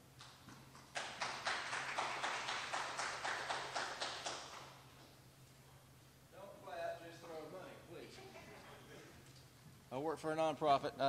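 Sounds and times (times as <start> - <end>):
small audience applauding: 0.2 - 5.0.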